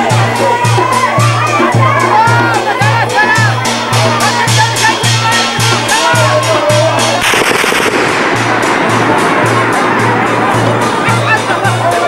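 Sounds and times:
low drum beating: 0:00.0 - 0:12.0
metal drum: 0:00.0 - 0:12.0
reed pipe melody: 0:00.0 - 0:12.0
rapid cracks and bangs: 0:07.2 - 0:11.2.

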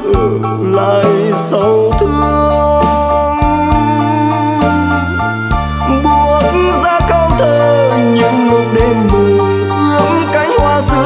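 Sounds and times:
held chords over bass line: 0:00.0 - 0:11.0.

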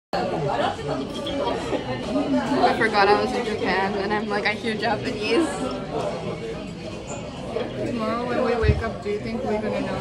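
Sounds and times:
indistinct chatter of voices: 0:00.2 - 0:10.0.

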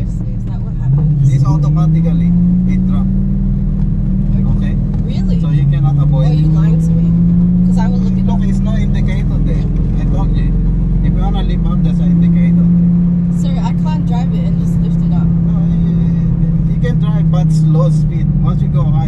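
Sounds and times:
car engine droning: 0:00.0 - 0:19.0.

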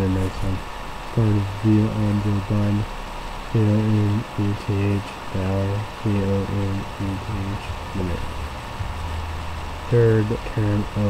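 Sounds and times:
man's muffled voice talking: 0:00.0 - 0:00.6, 0:01.2 - 0:02.9, 0:03.6 - 0:08.3, 0:09.9 - 0:11.0.

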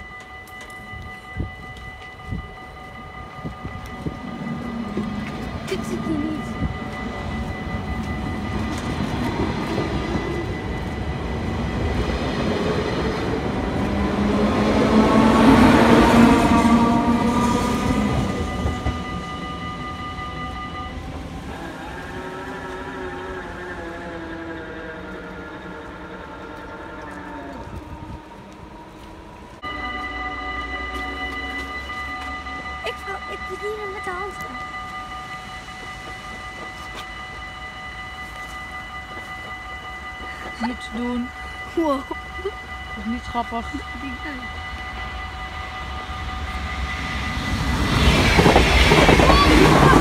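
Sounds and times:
electric train passing: 0:00.0 - 0:50.0
level crossing warning bell: 0:00.0 - 0:50.0.

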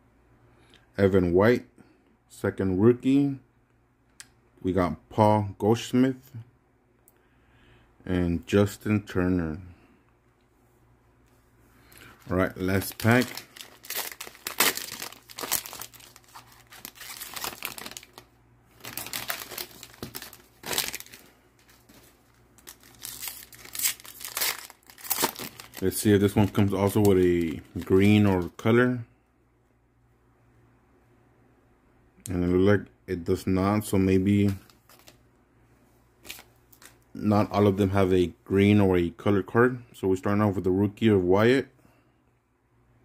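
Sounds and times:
foil wrappers crinkling: 0:11.8 - 0:28.6, 0:34.3 - 0:35.2, 0:36.2 - 0:37.0
cards rustling and sliding: 0:18.8 - 0:28.5, 0:34.4 - 0:35.2.

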